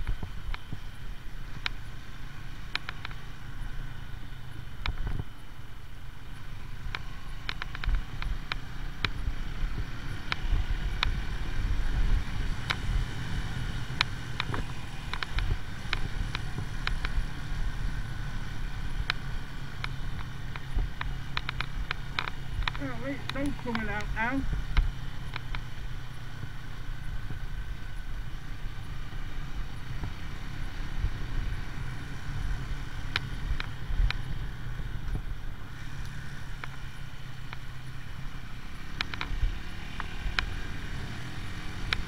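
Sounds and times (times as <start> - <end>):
motorcycle engine running: 0.0 - 42.0
sharp clicks and knocks: 6.9 - 9.2, 14.0 - 17.2, 19.8 - 25.7.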